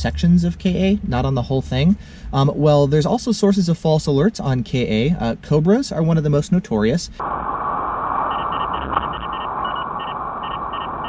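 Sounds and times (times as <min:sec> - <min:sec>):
road and engine noise in car: 0:00.0 - 0:11.0
radar detector beeping: 0:08.2 - 0:11.0.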